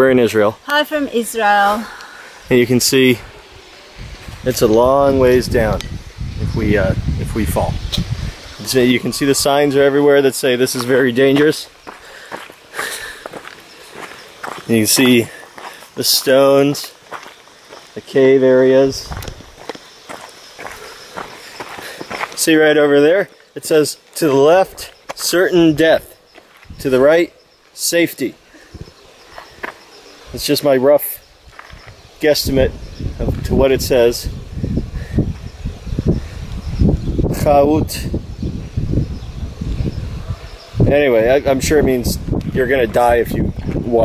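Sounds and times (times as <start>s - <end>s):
wind rumbling on microphone: 1.4s - 12.5s, 18.8s - 22.3s, 25.6s - 27.0s, 28.6s - 30.5s, 31.2s - 44.0s
footsteps crunching on gravel: 9.6s - 25.4s, 26.0s - 27.8s, 29.2s - 29.8s, 31.4s - 32.0s, 42.4s - 44.0s.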